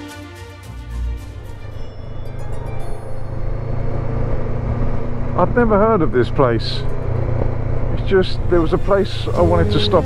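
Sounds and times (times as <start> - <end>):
road noise: 0.7 - 10.0
motorcycle engine drone: 1.3 - 10.0.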